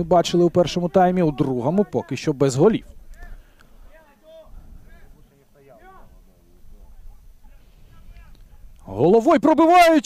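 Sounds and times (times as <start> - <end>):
distant voices calling out: 0.0 - 10.0.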